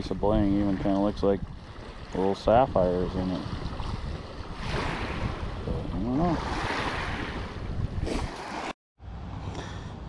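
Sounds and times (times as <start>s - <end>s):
wind on microphone: 0.0s - 8.7s
small waves lapping on pebbles: 3.4s - 5.6s.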